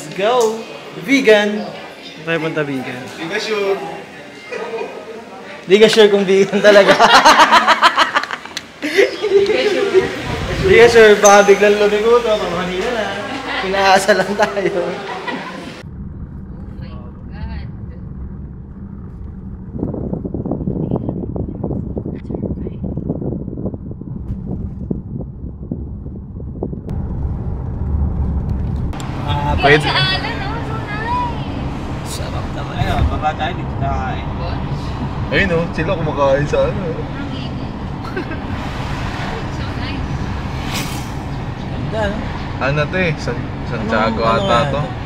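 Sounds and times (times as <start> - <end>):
car road noise rumble: 10.0 - 14.8, 15.6 - 45.0.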